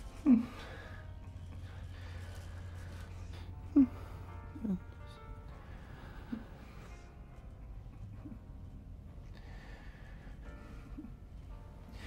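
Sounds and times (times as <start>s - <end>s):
elevator hum: 0.0s - 12.0s.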